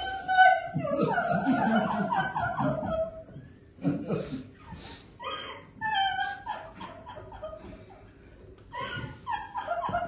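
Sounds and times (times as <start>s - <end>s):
woman sobbing: 4.0s - 8.0s, 8.7s - 10.0s.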